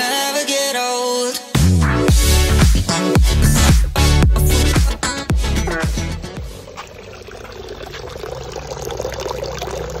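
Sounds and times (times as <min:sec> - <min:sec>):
music track: 0:01.6 - 0:06.8
water trickling in a drain gutter: 0:06.4 - 0:10.0.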